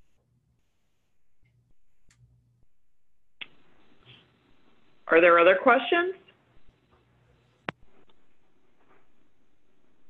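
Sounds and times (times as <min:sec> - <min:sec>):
low steady microphone hiss: 0:01.4 - 0:10.0.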